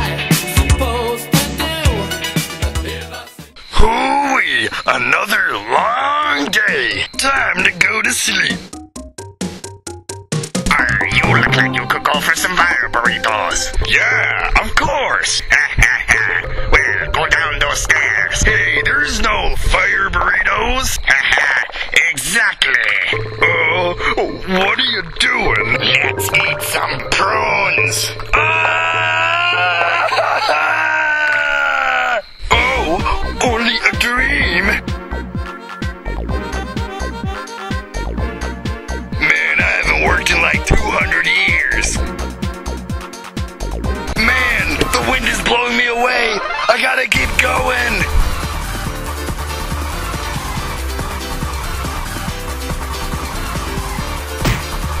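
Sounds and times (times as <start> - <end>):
music: 0.0 - 3.7, 5.8 - 20.5, 23.1 - 29.7, 32.5 - 55.0
cartoon character crying out: 28.3 - 33.0.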